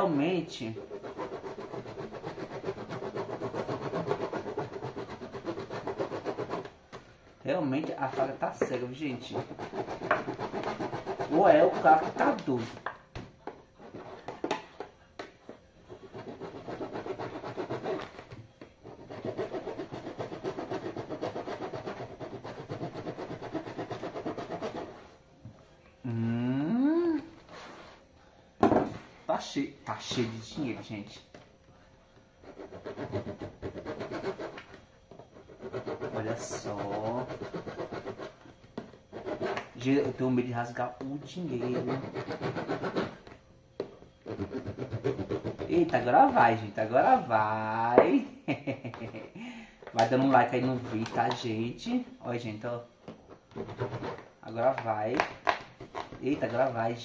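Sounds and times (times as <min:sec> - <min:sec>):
knife sawing through plastic: 0:00.7 - 0:06.7, 0:09.1 - 0:12.6, 0:16.0 - 0:18.2, 0:18.9 - 0:25.0, 0:32.5 - 0:34.6, 0:35.4 - 0:38.4, 0:41.5 - 0:43.2, 0:44.2 - 0:45.9, 0:53.5 - 0:54.3.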